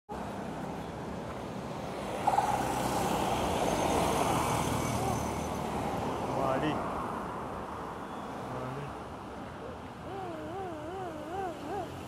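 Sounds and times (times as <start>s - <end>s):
traffic driving past: 0.1s - 12.0s.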